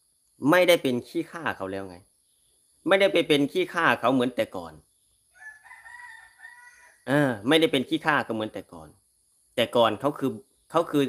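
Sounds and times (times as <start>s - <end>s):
rooster crowing faintly: 5.3s - 7.3s.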